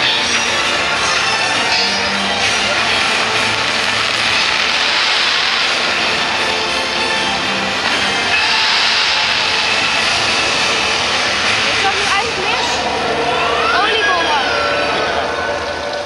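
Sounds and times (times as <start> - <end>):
faint music: 0.0 - 16.0
fireworks launching hiss: 1.3 - 12.9.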